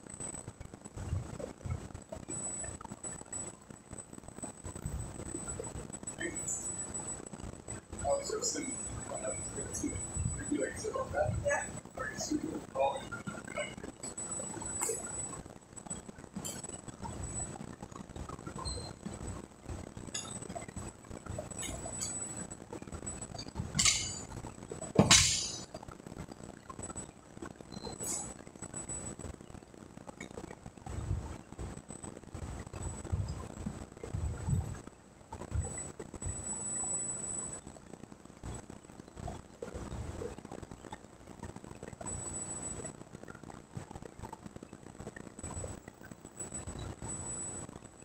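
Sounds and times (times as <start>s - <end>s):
barbell plates clanking: 23.8s - 24.2s, 25.0s - 25.6s.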